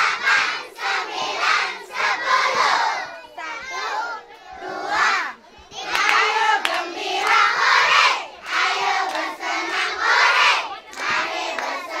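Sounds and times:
children shouting and chanting: 0.0s - 12.0s.

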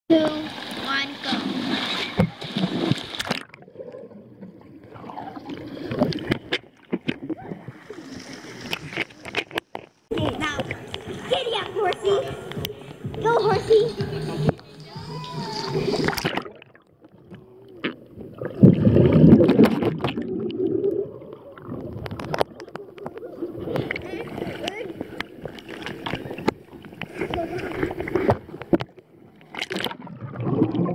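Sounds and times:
pool water splashing: 0.1s - 30.9s
underwater gurgling: 0.1s - 30.9s
sharp clicks underwater: 1.9s - 3.6s, 8.5s - 13.3s, 15.9s - 21.0s, 21.6s - 30.9s
child calling out: 15.0s - 15.9s.

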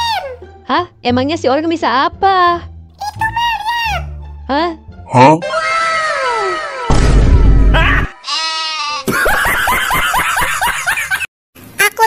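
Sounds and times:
high-pitched comic laughter: 7.7s - 11.3s.

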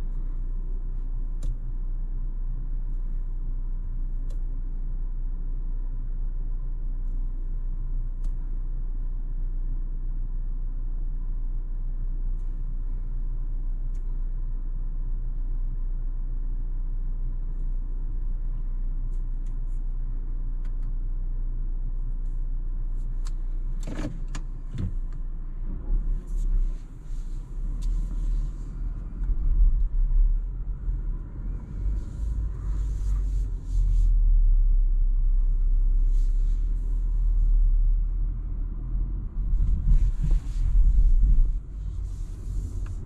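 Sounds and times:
car engine running: 0.0s - 43.0s.

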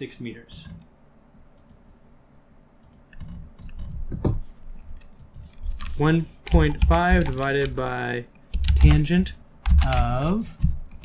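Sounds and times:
keyboard and mouse clicks: 1.5s - 1.8s, 2.8s - 7.9s, 8.5s - 11.0s.

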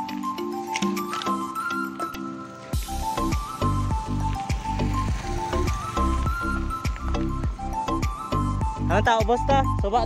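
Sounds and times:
background music with beat and bass: 0.0s - 10.0s.

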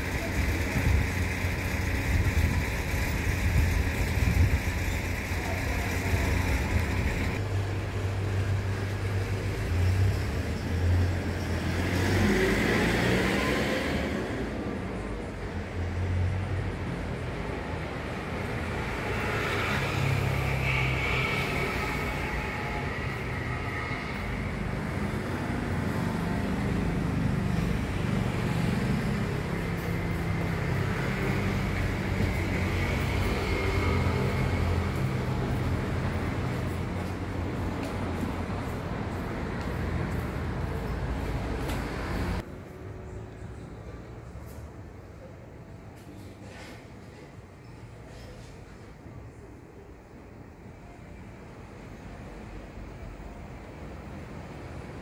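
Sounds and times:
vehicles passing: 0.0s - 55.0s.

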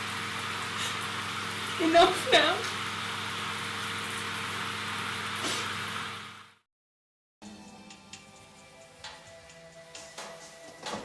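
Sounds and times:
shower water hissing: 0.0s - 6.6s.

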